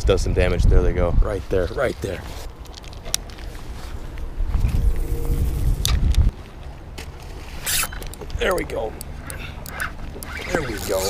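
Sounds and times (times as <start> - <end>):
wind and clothing rumble: 0.0 - 11.0
fishing line zip: 7.6 - 8.0, 9.2 - 11.0.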